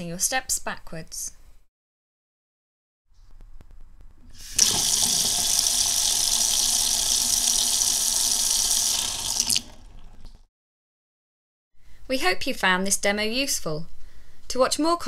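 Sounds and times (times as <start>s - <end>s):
water running from tap: 4.4s - 10.5s.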